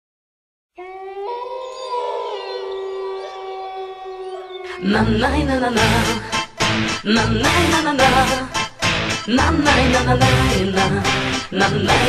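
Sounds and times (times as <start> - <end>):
higher wolf howl: 0.8 - 5.0
wolves howling: 0.8 - 5.5.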